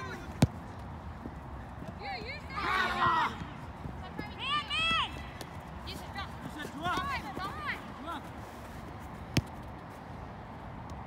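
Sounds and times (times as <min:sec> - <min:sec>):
running feet on turf: 0:01.2 - 0:09.8.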